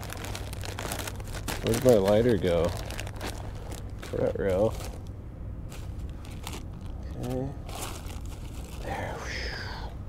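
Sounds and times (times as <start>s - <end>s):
rustling and crunching on sand: 0.0s - 5.1s, 5.7s - 9.2s
steady low rumble: 0.0s - 10.0s.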